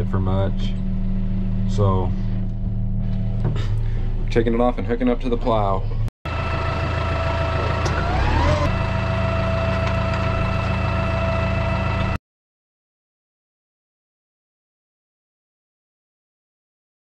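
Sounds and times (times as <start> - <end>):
diesel tractor engine running: 0.0 - 5.7, 6.3 - 12.2
rising whine: 6.3 - 12.2.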